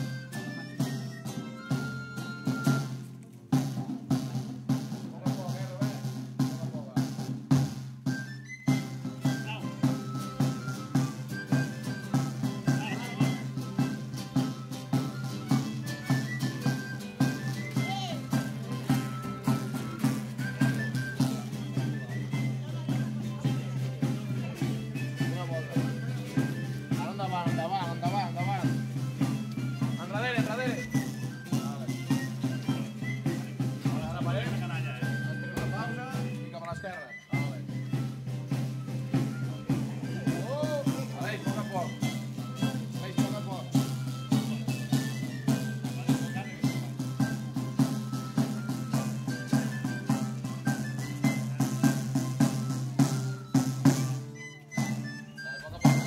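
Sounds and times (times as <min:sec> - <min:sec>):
violin melody: 0:00.0 - 0:03.3, 0:09.0 - 0:51.1
drum steady beat: 0:00.0 - 0:56.0.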